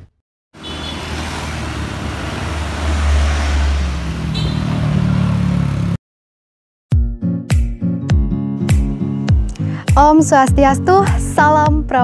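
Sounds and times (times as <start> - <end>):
passing vehicle engine and tyres: 0.6 - 6.0.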